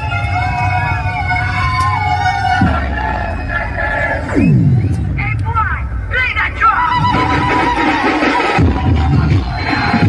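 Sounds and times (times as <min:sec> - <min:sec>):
crowd shouting: 0:00.0 - 0:05.2, 0:06.5 - 0:10.0
dj music with heavy bass: 0:02.5 - 0:10.0.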